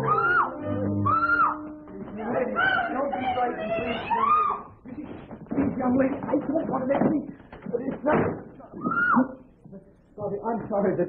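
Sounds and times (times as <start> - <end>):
voices crying out: 0.0 - 1.8, 2.4 - 4.8.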